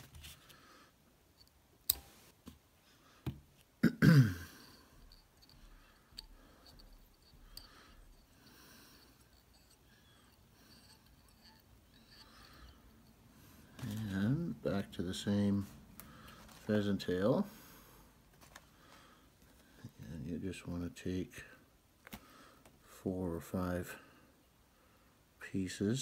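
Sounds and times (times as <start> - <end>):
faint handling noise: 0.0 - 3.8, 4.6 - 17.5, 18.1 - 20.3
person clearing throat: 3.8 - 4.7.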